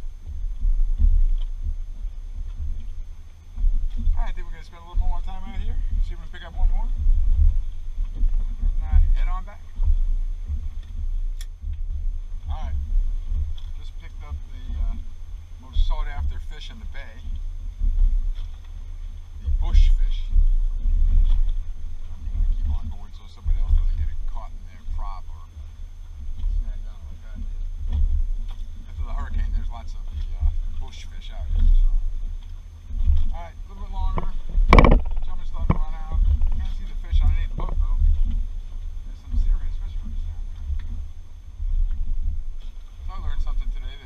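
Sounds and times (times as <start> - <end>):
wind buffeting microphone: 0.0 - 44.0
sharp knock: 34.2 - 36.9.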